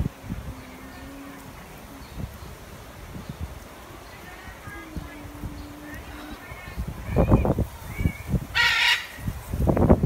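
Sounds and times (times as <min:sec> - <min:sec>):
harsh squawking bird call: 0:08.0 - 0:09.2.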